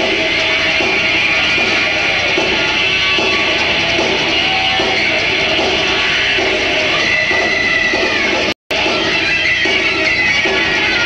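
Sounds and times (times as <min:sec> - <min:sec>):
heavy metal band playing live: 0:00.0 - 0:11.0
high guitar squeal: 0:00.0 - 0:11.0.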